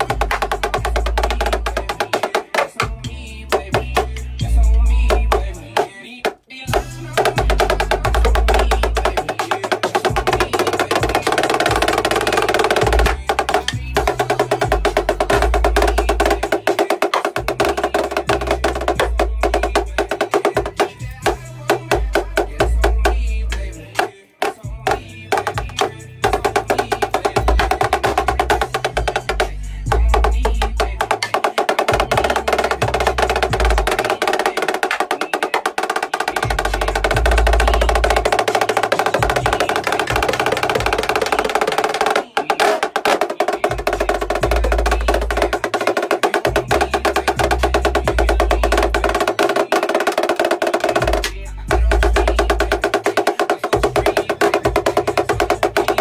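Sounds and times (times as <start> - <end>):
marching snare drum rolls: 24.5 - 56.0.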